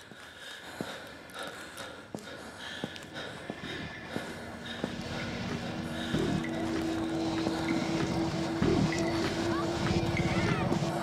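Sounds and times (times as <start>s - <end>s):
sustained low drone note: 6.2s - 11.0s.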